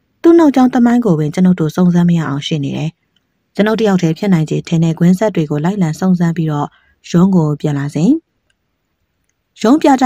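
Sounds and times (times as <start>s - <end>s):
person narrating: 0.2s - 3.0s, 3.6s - 8.2s, 9.6s - 10.0s.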